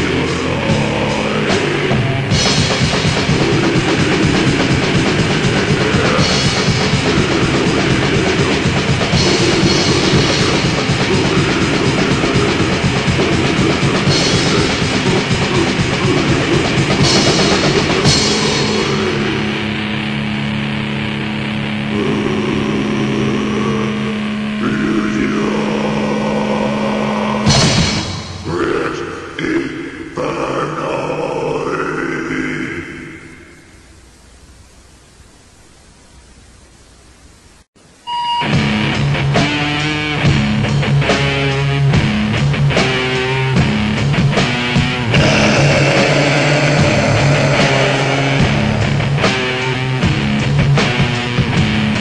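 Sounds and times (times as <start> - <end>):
distorted metal guitar note: 0.0 - 34.3, 38.1 - 52.0
sudden crash: 27.5 - 28.6
ragged noisy passage: 45.0 - 49.8.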